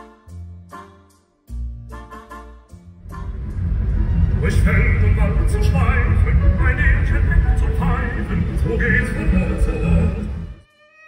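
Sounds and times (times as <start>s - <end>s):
music: 0.0s - 11.0s
low road rumble inside car: 3.1s - 10.4s
person speaking: 4.4s - 10.5s.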